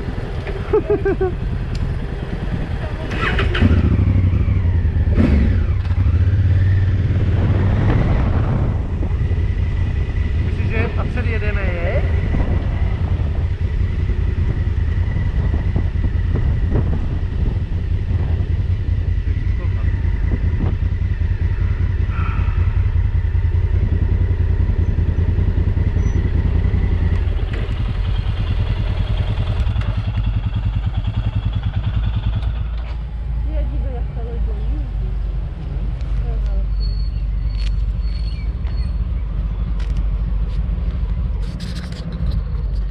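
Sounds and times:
motorcycle engine running: 0.0 - 42.9
road and wind rumble: 0.0 - 42.9.

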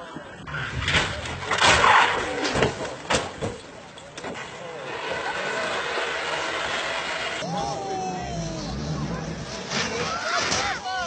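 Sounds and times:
spectators' voices: 0.0 - 11.0
rally car engine approaching: 4.5 - 10.1.

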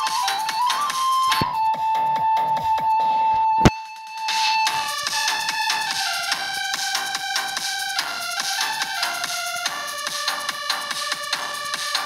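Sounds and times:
flute-like keyboard melody: 0.0 - 9.6.

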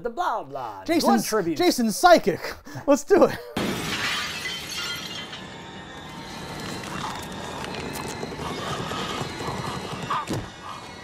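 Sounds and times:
shattering crash: 3.6 - 7.1.

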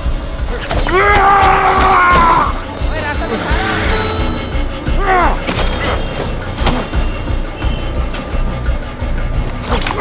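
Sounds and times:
action film music with pulsing beat: 0.0 - 10.0
men shouting: 0.6 - 4.2.

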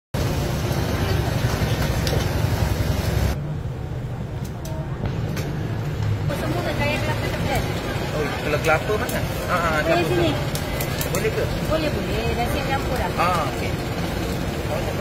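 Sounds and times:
traffic rumble: 0.1 - 15.0
voices: 4.2 - 15.0.

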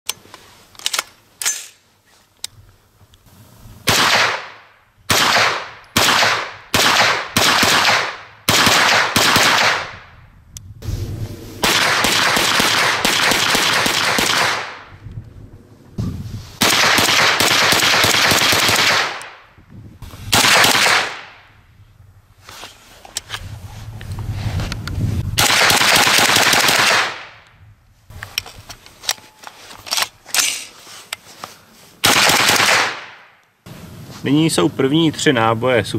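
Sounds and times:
rapid gunfire: 3.9 - 4.5, 5.1 - 9.9, 11.6 - 14.8, 16.6 - 19.2, 20.4 - 21.3, 25.4 - 27.3, 32.0 - 33.1
rifle gunshots: 3.9 - 10.0, 11.6 - 14.9, 16.6 - 19.4, 20.3 - 21.4, 25.4 - 27.4, 32.0 - 33.3.

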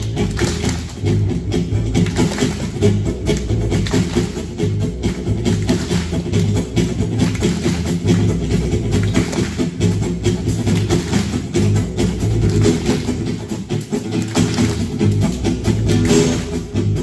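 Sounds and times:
acoustic guitar: 0.0 - 17.0
low bass notes: 0.0 - 17.0
steady percussive beat: 0.0 - 17.0.

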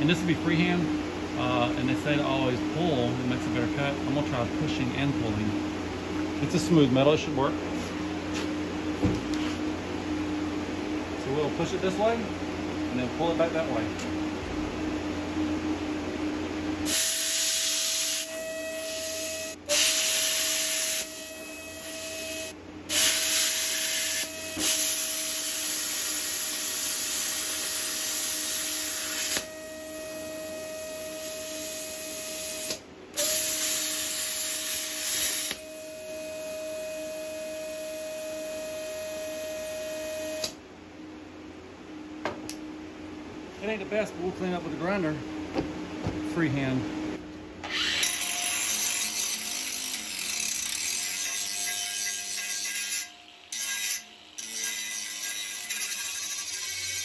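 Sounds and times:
plasma cutter hissing and whining: 16.9 - 36.4, 47.7 - 57.0.

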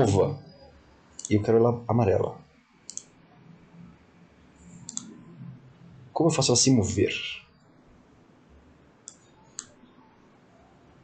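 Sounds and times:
computer mouse click: 2.9 - 3.1, 4.7 - 5.2, 9.0 - 9.8.

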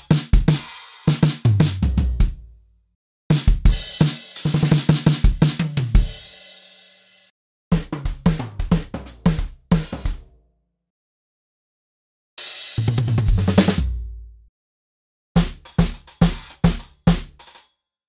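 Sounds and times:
acoustic drum fills: 0.0 - 2.4, 3.3 - 10.2, 12.4 - 14.1, 15.4 - 17.6.

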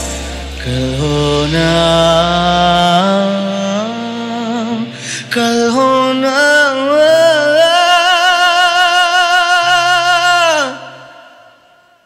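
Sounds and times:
low sustained accompaniment note: 0.0 - 5.6
man singing a ballad: 0.0 - 12.0.

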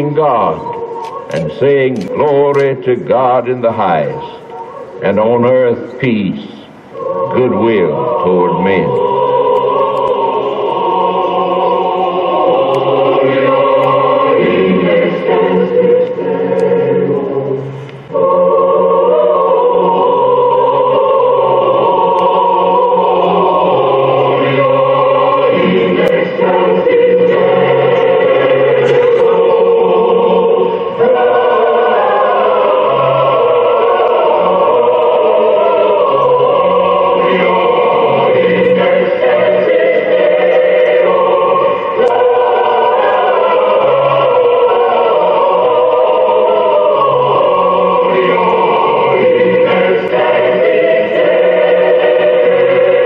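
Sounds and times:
choir singing long chords: 0.0 - 53.0.

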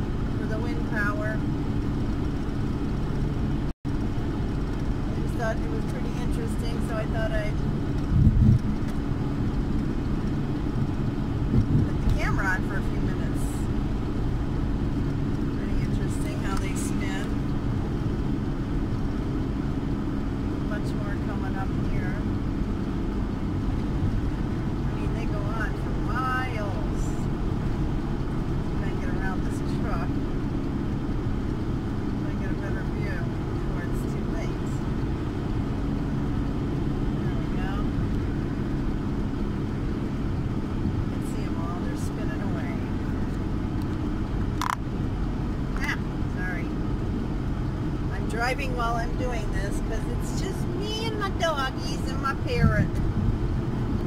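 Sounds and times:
engine drone and road noise: 0.0 - 54.0.

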